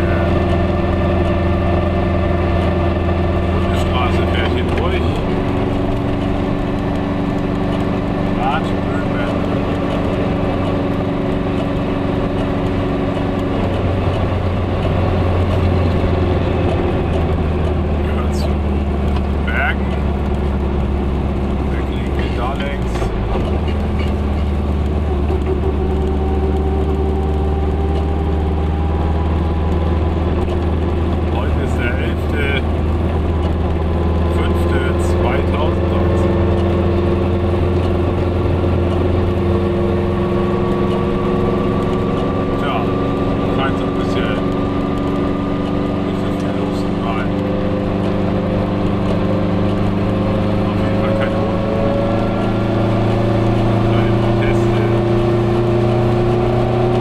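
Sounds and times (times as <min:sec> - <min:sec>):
two-stroke car engine running: 0:00.0 - 0:57.0.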